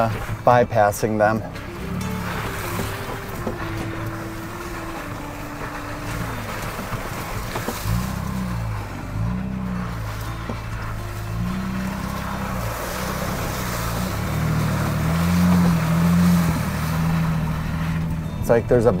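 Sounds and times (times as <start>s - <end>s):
truck engine revving: 0.0s - 19.0s.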